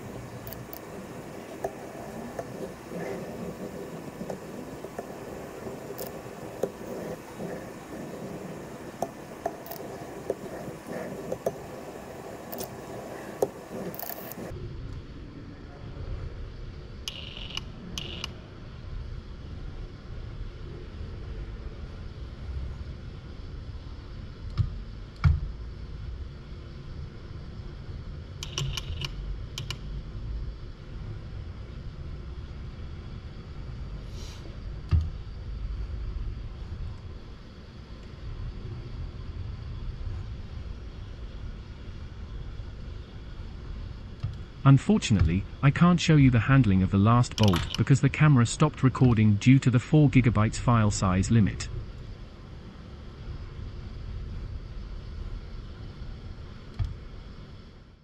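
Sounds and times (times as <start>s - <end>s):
steady low hum: 0.0s - 58.0s
robot gripper clicking on bolts: 47.3s - 47.8s.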